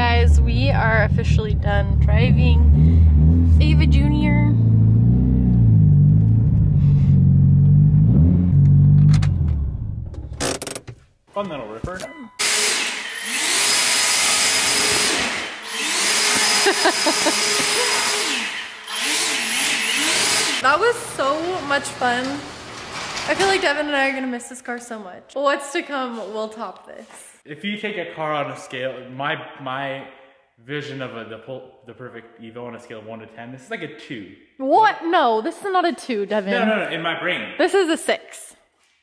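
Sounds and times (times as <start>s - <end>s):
people talking: 0.0s - 2.8s, 3.6s - 4.6s, 11.4s - 12.2s, 20.6s - 22.4s, 23.3s - 38.6s
car engine revving: 0.0s - 10.4s
person laughing: 16.2s - 18.5s.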